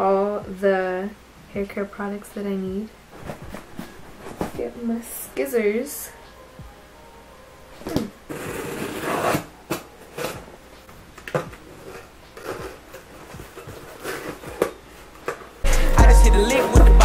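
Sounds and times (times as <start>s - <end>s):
cardboard flaps scraping: 3.2s - 4.7s
loud music with heavy beat: 15.7s - 17.0s.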